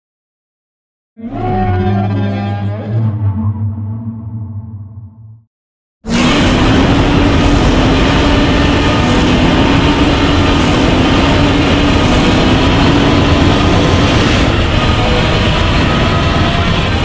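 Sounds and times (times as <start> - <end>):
monster roar: 6.1 - 17.0.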